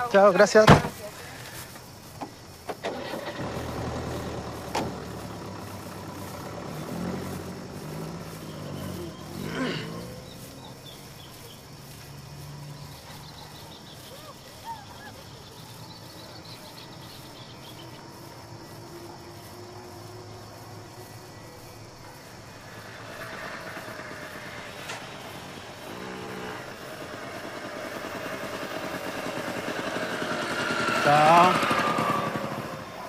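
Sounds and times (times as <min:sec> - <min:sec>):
vehicle engine rumbling: 0:00.0 - 0:33.0.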